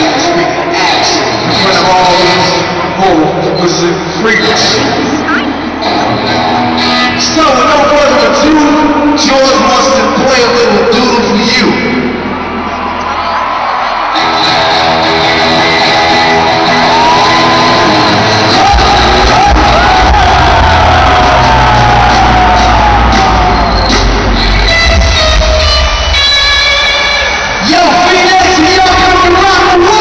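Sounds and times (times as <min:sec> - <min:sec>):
electric guitar solo: 0:04.8 - 0:07.4, 0:14.1 - 0:28.2
bass and drums: 0:14.2 - 0:30.0.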